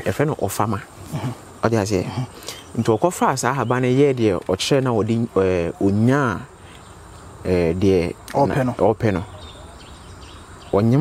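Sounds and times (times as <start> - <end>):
man speaking: 0.0 - 6.6, 7.4 - 9.8, 10.7 - 11.0.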